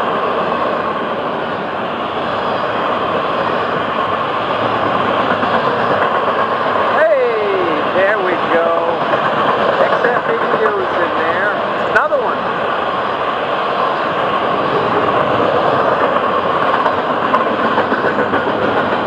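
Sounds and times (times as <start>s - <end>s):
train wheels on rail: 0.0s - 19.0s.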